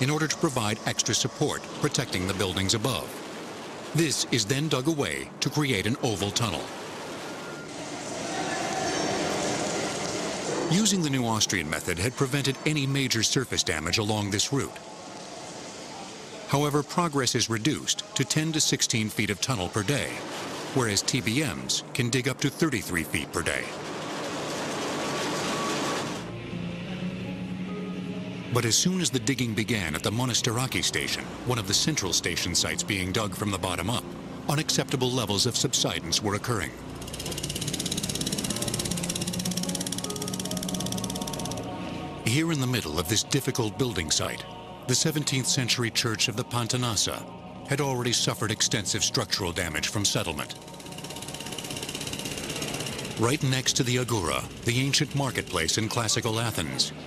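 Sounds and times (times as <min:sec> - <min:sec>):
heavy tunnelling machinery: 0:34.4 - 0:41.7, 0:50.4 - 0:57.0.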